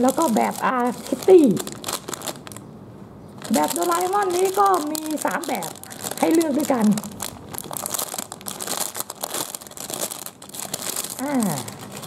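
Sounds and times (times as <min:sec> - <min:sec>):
plastic bag crinkling: 0:00.0 - 0:02.7, 0:03.3 - 0:12.0.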